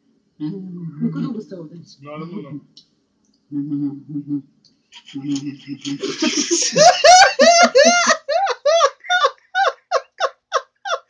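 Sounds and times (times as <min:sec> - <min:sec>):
man's squeaky laughter: 0:06.0 - 0:11.0.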